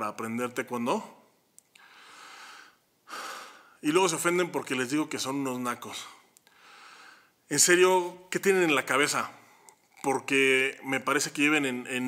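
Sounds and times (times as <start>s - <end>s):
man speaking: 0.0s - 1.3s, 3.8s - 6.3s, 7.5s - 12.0s
man breathing close to microphone: 1.8s - 3.8s, 6.4s - 7.4s.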